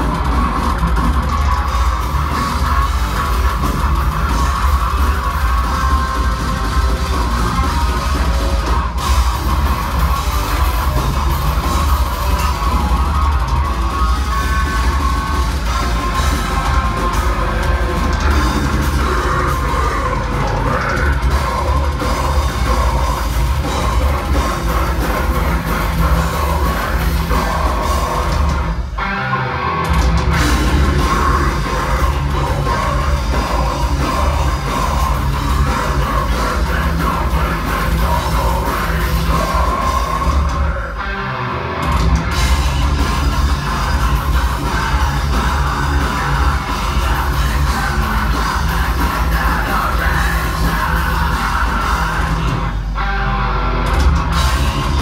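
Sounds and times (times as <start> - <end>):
drum kit playing: 0.0 - 41.0, 41.8 - 53.0, 53.7 - 55.0
distorted guitars: 0.0 - 55.0
harsh screamed vocals: 0.0 - 55.0.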